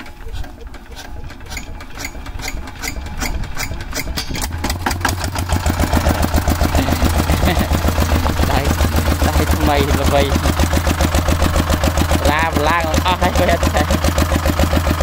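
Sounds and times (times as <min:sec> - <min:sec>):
diesel engine starting and running: 0:00.0 - 0:15.0.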